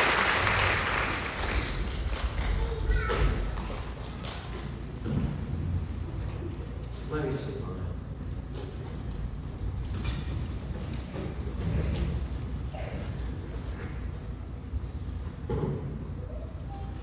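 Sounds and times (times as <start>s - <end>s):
low rumble of large hall: 0.0s - 17.0s
faint indistinct murmurs: 1.4s - 17.0s.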